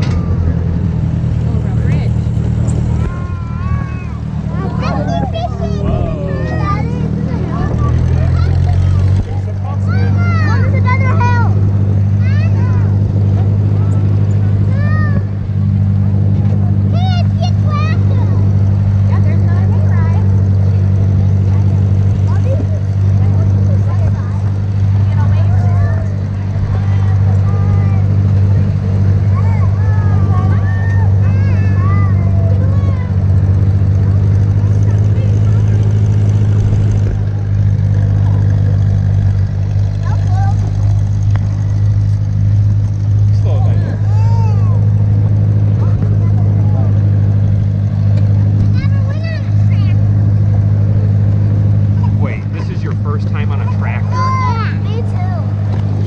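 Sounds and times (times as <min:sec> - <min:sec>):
faint children's voices: 0:00.0 - 0:52.6, 0:53.4 - 0:56.0
tractor engine droning: 0:00.0 - 0:56.0.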